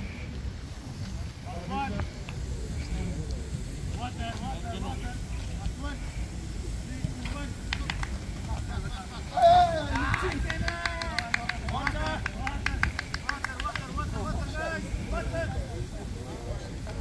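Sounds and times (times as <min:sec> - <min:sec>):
steady low rumble: 0:00.0 - 0:17.0
men calling out and chatting: 0:01.4 - 0:17.0.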